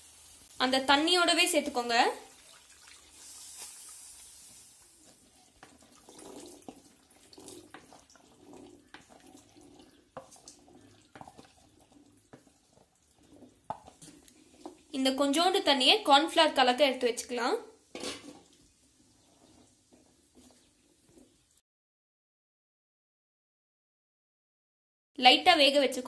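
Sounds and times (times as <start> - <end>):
liquid splashing into a pan: 1.6 - 14.9, 17.7 - 21.6.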